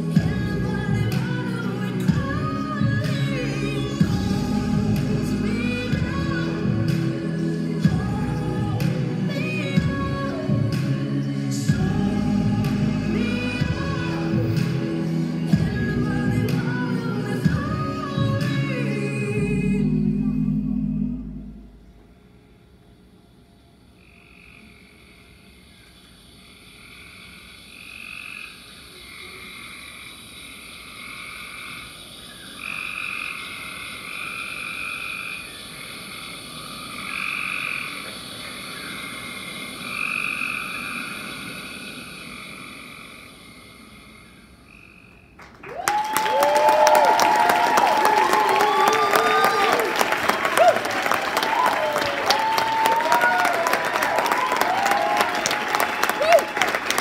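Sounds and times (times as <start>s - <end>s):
frog-like croaking calls: 24.0s - 45.4s
audience applause and cheers: 45.4s - 57.0s.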